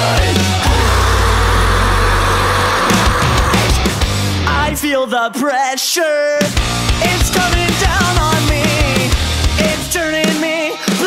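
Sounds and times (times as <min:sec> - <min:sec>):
heavy rock band playing: 0:00.0 - 0:05.1, 0:06.4 - 0:11.0
low guitar and bass chord: 0:00.6 - 0:04.8.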